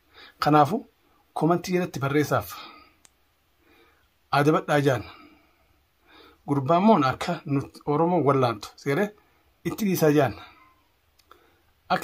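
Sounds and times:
man speaking: 0.4 - 2.9, 4.3 - 5.2, 6.5 - 10.6.

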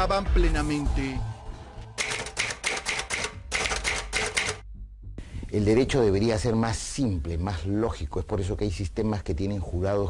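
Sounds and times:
typewriter key strikes: 2.0 - 4.6.

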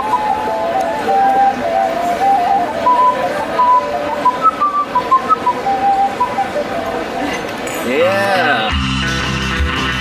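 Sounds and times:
ocarina melody: 0.0 - 10.0.

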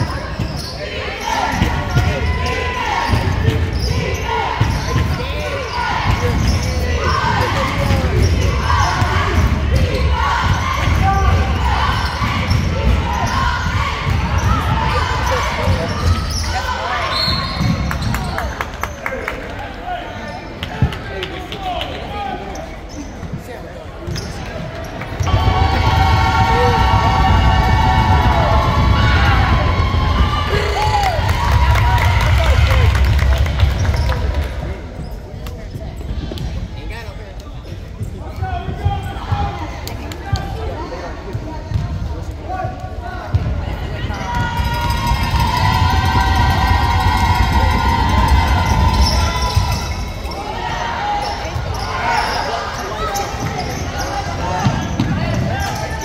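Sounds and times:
players and spectators calling out: 0.0 - 56.0.

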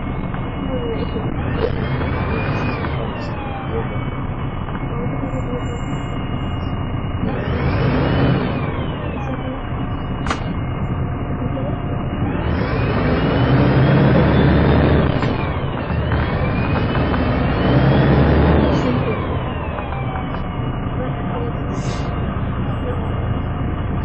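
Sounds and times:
bus engine accelerating: 0.0 - 24.0.

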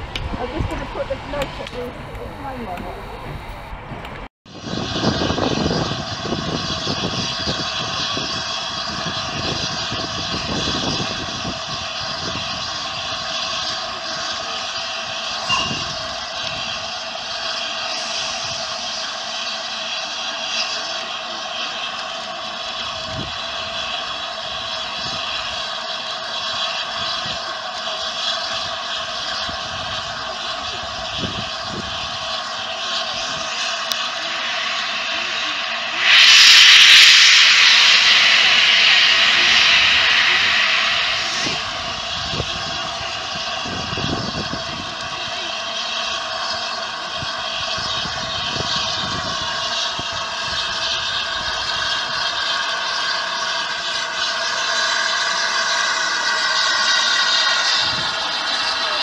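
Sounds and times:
steam hissing from drain cocks: 8.2 - 59.0.

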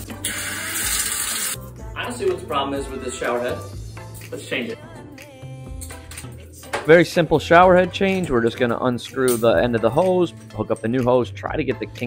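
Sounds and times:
shower spraying on tiled floor: 0.0 - 1.6
background music: 0.0 - 12.0.

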